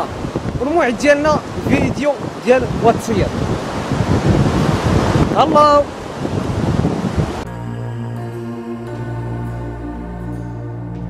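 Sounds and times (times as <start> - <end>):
wind buffeting microphone: 0.0 - 7.5
calm ambient music: 7.4 - 11.0.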